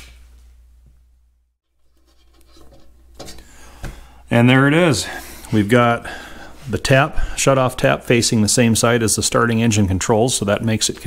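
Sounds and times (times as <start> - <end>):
small parts scraping: 1.8 - 3.6.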